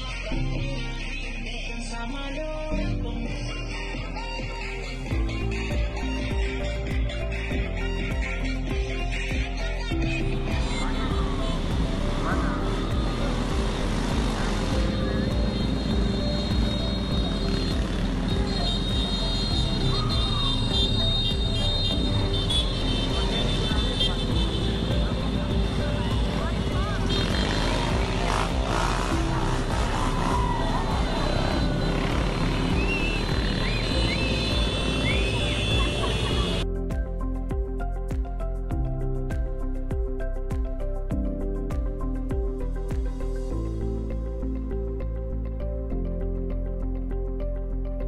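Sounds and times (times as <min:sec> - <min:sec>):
background music: 0:00.0 - 0:48.0
motorcycle engines passing: 0:10.6 - 0:36.6
crowd voices: 0:23.1 - 0:36.6.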